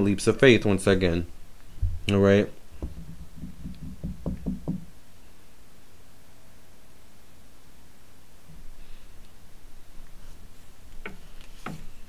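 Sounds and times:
hand tapping on tabletop: 0:02.8 - 0:04.9
sharp knocks: 0:02.8 - 0:04.9.

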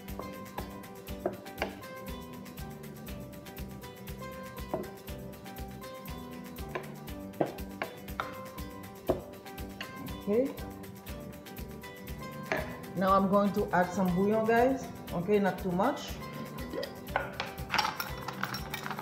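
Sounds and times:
background music with steady beat: 0:00.0 - 0:19.0.

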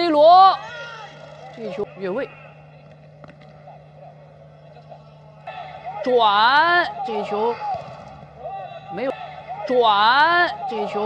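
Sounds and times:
steady low hum: 0:00.0 - 0:11.0
distant players shouting: 0:00.2 - 0:11.0.

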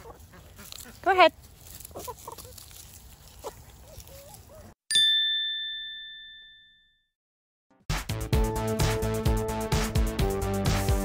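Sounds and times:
chickens clucking: 0:00.0 - 0:04.8
bell-like ding: 0:04.9 - 0:07.1.

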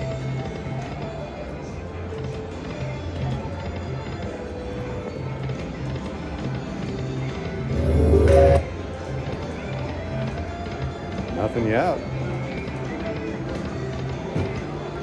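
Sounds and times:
slot machine music with low beat: 0:07.7 - 0:08.8.

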